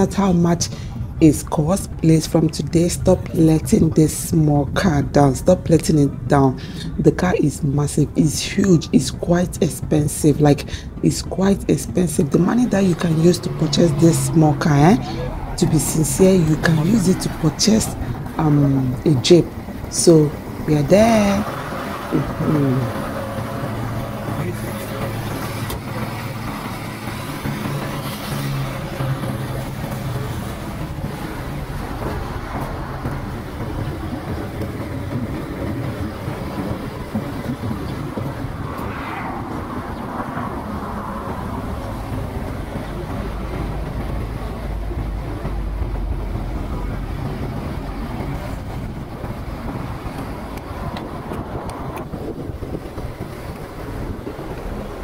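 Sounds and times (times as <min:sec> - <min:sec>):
faint voices: 0:00.0 - 0:55.0
traffic rumble: 0:00.0 - 0:55.0.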